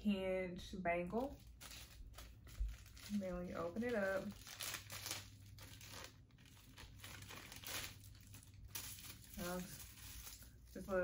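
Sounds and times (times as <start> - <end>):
plastic bag and paper crinkling: 1.1 - 11.0.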